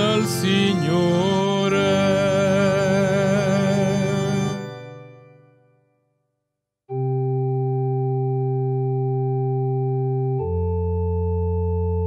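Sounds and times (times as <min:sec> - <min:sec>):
organ chord held steady: 0:00.0 - 0:05.9, 0:06.9 - 0:12.0.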